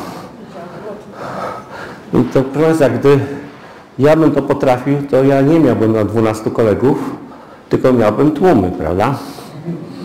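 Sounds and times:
hall background noise: 0.0 - 10.0
man speaking amplified: 2.1 - 9.4.

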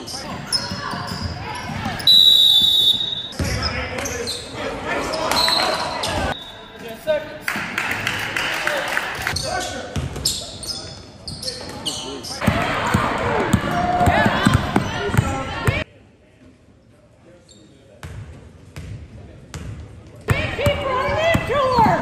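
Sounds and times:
basketball bouncing on court: 12.4 - 15.8, 18.0 - 22.0
echoing voices of crowd: 12.4 - 15.9.

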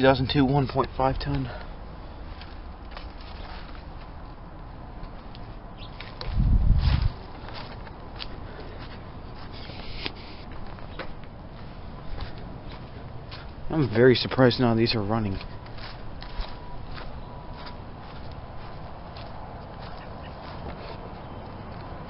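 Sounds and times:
steady background noise: 0.0 - 22.0
footsteps on concrete and grass: 0.6 - 22.0.

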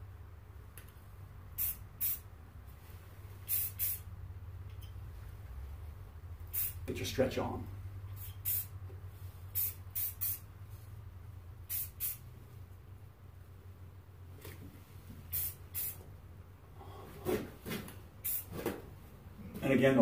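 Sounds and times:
spray paint can hissing: 1.6 - 2.3, 3.4 - 4.1, 6.5 - 6.8, 8.1 - 8.8, 9.5 - 10.5, 11.6 - 12.3, 15.2 - 16.0, 18.2 - 18.5.

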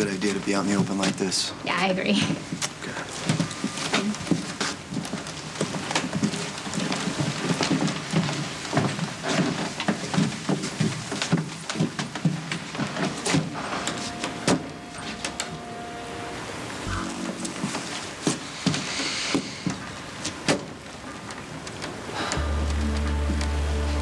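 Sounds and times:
faint low tones: 13.7 - 18.5.

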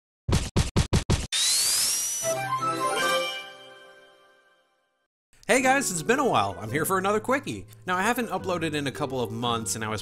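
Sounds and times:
whoosh rising in pitch: 1.3 - 3.6.

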